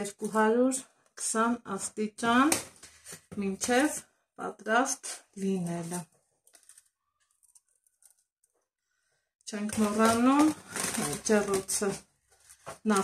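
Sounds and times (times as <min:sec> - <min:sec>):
woman talking: 0:00.0 - 0:02.6, 0:03.3 - 0:06.0, 0:09.5 - 0:12.0.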